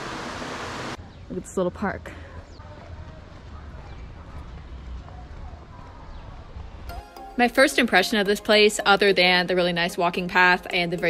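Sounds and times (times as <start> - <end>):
faint distant voices: 2.0 - 6.6.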